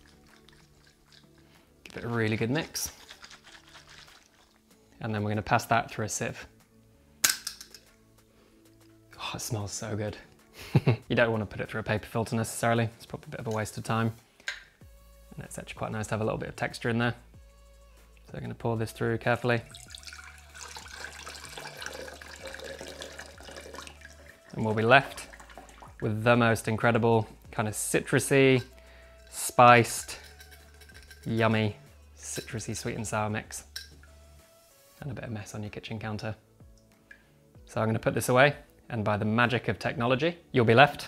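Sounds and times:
syrup trickling into glass jug: 0.0s - 1.6s, 2.3s - 4.7s, 19.6s - 26.1s, 28.5s - 31.5s
liquid sloshing in glass jar: 0.0s - 4.6s, 19.6s - 26.1s, 28.6s - 31.4s
quiet background music: 0.0s - 41.0s.

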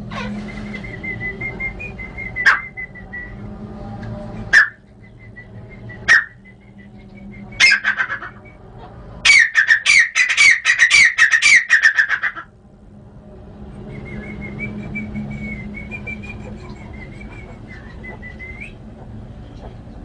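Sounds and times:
bird calling rapid notes: 0.2s - 3.0s, 6.0s - 6.8s, 7.6s - 8.6s, 9.2s - 12.5s.

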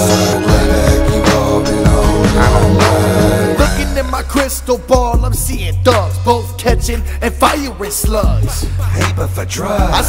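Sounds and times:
rapping over a beat: 0.0s - 10.0s.

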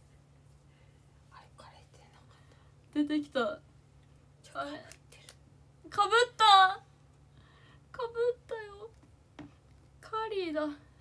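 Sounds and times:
faint low hum: 0.0s - 11.0s
woman speaking softly: 1.3s - 3.6s, 4.4s - 5.3s, 10.0s - 10.9s.

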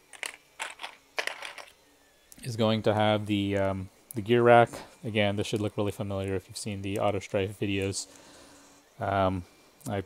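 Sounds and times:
plastic parts clicking: 0.1s - 1.7s.

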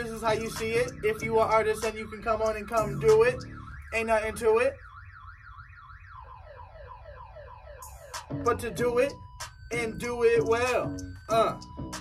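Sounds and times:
car alarm siren over speaker: 0.0s - 12.0s.

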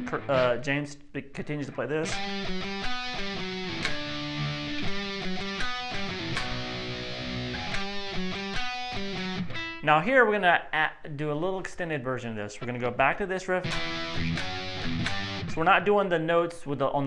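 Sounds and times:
electric guitar rock riff: 0.0s - 0.6s, 2.0s - 9.8s, 13.6s - 15.6s.

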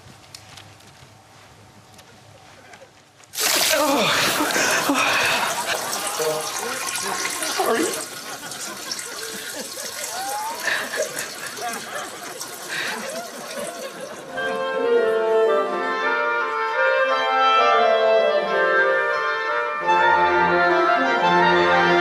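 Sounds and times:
water trickling: 3.4s - 14.3s.

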